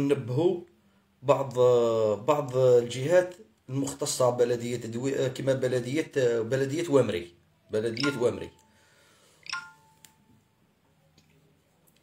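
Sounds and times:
two-tone phone beep: 8.0s - 8.6s, 9.4s - 10.0s.

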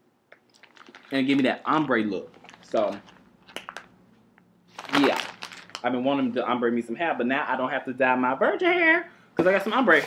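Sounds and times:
packaging clicks and crinkles: 0.4s - 1.6s, 2.2s - 3.9s, 4.7s - 6.0s
packaging rustle: 0.4s - 3.9s, 4.7s - 6.0s.

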